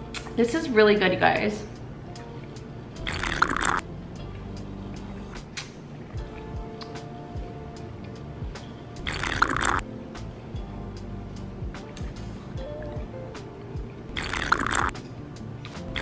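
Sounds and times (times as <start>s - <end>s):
background music: 0.0s - 16.0s
person sipping a drink: 3.0s - 3.8s, 9.0s - 9.8s, 14.2s - 14.9s.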